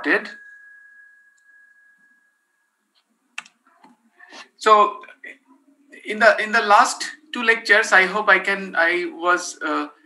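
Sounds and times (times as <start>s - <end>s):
faint thin high tone: 0.0s - 3.8s.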